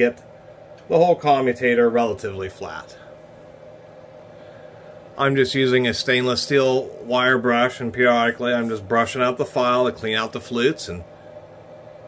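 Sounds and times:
faint steady hum and hiss: 0:00.0 - 0:12.0.

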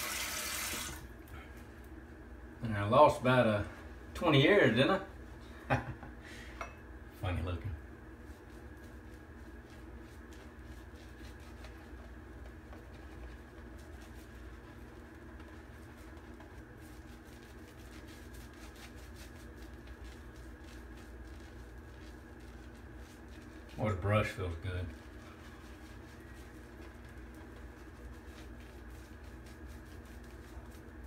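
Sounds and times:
shaving brush scrubbing skin: 0:08.0 - 0:31.0.

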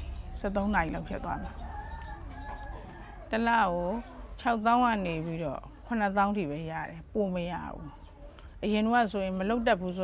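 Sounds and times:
woman speaking: 0:00.3 - 0:01.9, 0:03.1 - 0:10.0
rooster crowing faintly: 0:01.0 - 0:04.4.

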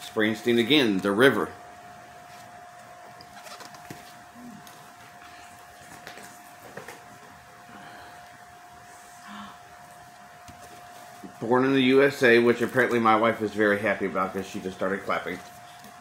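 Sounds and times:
faint steady whine: 0:00.0 - 0:16.0
record sleeves clicking and rustling: 0:03.1 - 0:04.8.

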